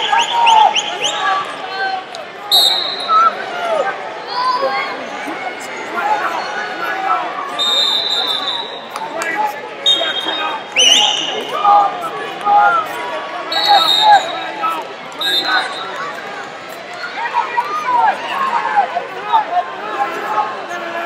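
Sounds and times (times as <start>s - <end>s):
referee whistle blasts: 2.5s - 3.3s, 7.5s - 8.9s, 9.8s - 11.5s, 13.5s - 14.6s, 15.2s - 16.0s.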